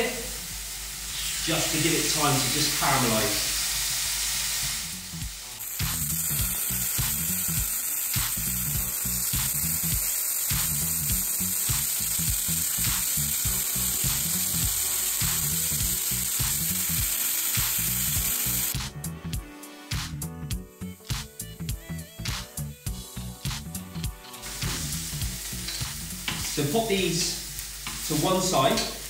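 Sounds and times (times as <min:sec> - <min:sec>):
chicken sizzling in a frying pan: 0:00.0 - 0:18.8, 0:20.8 - 0:29.0
background music with steady beat: 0:03.9 - 0:29.0.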